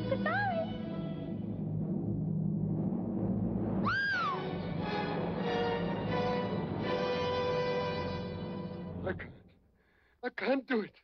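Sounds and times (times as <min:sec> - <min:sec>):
dramatic orchestral chords: 0:00.0 - 0:09.4.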